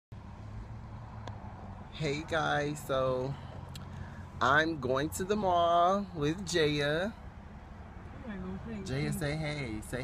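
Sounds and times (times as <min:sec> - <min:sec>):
car cabin engine hum: 0:00.2 - 0:10.0.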